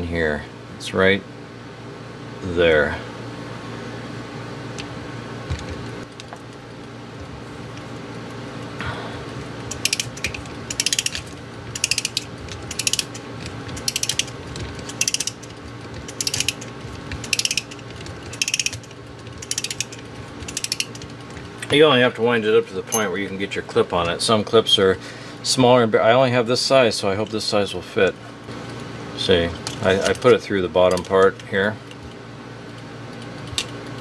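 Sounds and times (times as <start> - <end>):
clock ratchet clicking: 9.7 - 21.3.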